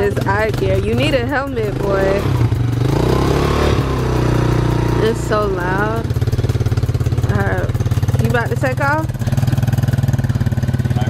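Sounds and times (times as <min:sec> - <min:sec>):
small atv engine running: 0:00.0 - 0:11.0.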